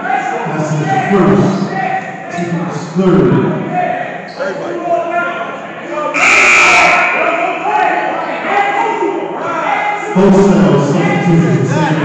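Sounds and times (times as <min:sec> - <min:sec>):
voices talking and calling out: 0:00.0 - 0:12.0.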